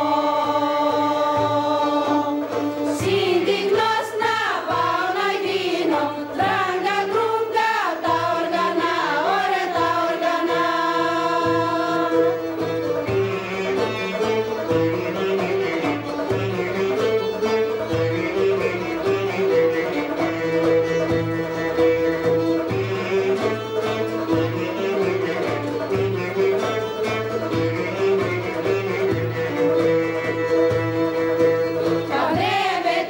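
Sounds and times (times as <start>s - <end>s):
frame drum beat: 0.0s - 33.0s
oud: 0.0s - 33.0s
violin: 0.0s - 33.0s.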